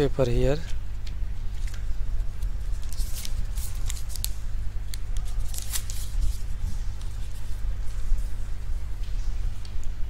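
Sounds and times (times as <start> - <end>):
steady low hum: 0.0 - 10.0
paper rustling and crackling: 0.5 - 8.3.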